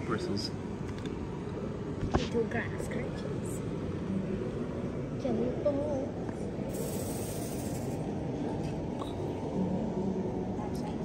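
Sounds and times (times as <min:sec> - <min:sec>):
indoor hall background noise: 0:00.0 - 0:11.0.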